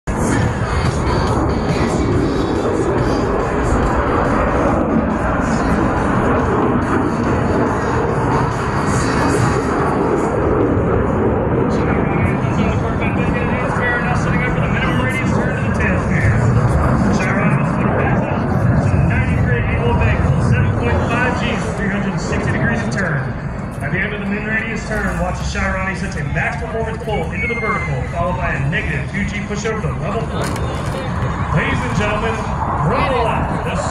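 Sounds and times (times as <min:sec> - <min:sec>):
music over loudspeakers: 0:00.1 - 0:10.5
crowd chatter: 0:00.1 - 0:33.9
low rushing noise: 0:00.1 - 0:33.9
man speaking over loudspeakers: 0:11.5 - 0:33.9.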